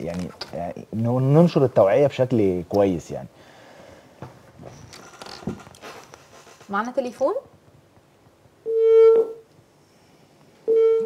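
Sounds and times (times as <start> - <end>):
telephone line beep: 8.7 - 9.4, 10.6 - 11.0.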